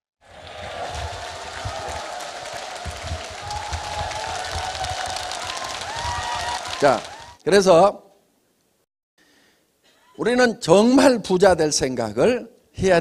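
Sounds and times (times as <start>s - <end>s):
audience applauding: 0.2s - 7.4s.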